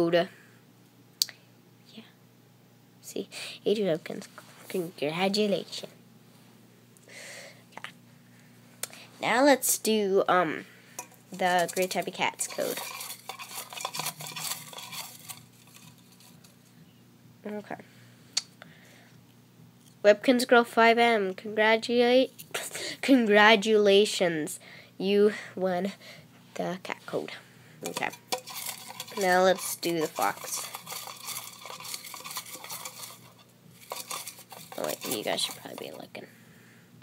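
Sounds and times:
clicks and scrapes against metal: 11.0 - 16.6, 27.8 - 36.1
paper slips rustling in metal tin: 11.3 - 16.6, 27.8 - 36.1.

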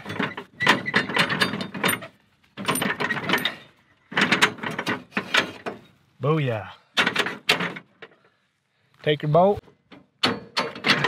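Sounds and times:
metal tubing scraping and clattering: 0.0 - 6.1, 10.2 - 11.0.

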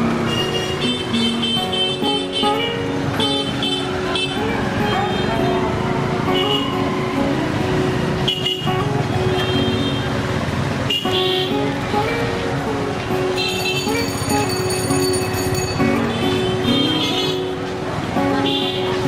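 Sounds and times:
street traffic: 0.0 - 19.0
vehicle horns honking: 0.2 - 5.4, 6.3 - 6.8, 8.2 - 10.2, 10.8 - 11.7, 13.3 - 14.6, 16.0 - 17.6, 18.3 - 19.0.

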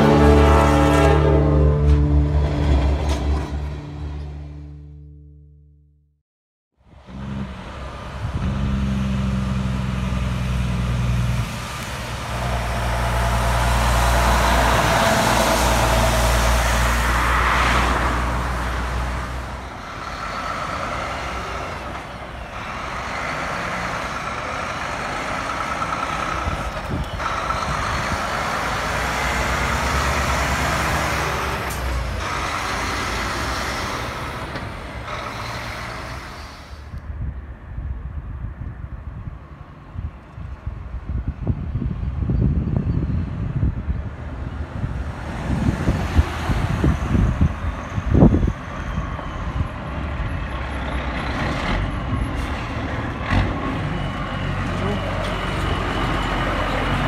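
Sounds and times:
diesel trucks driving past: 0.0 - 5.7, 6.8 - 57.0.

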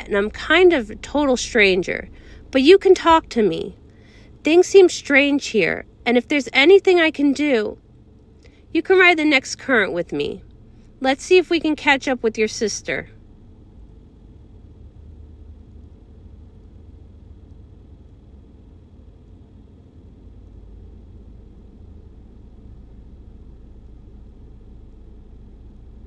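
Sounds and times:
faint low hum: 0.0 - 26.0.

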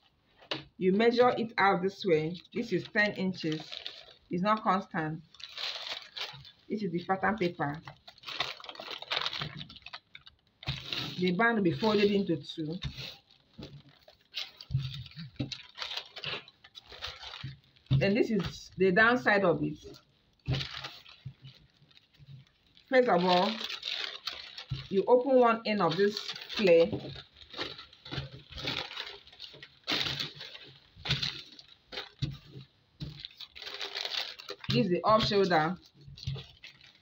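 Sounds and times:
paper rustling and crinkling: 0.0 - 37.0.

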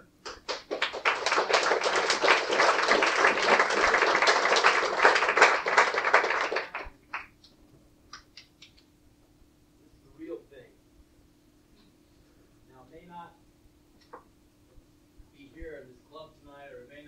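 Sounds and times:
small audience clapping: 0.0 - 8.9.

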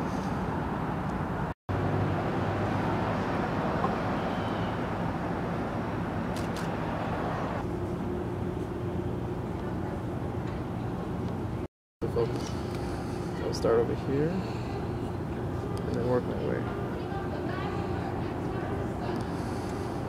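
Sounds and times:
city traffic rumble: 0.0 - 20.0.

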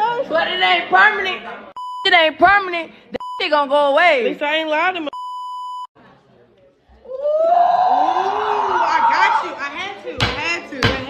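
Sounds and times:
censor bleep: 5.1 - 5.9.

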